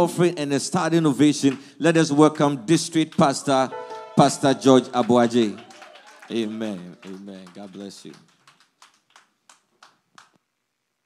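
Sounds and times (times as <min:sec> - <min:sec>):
faint hand claps: 0:05.0 - 0:10.4.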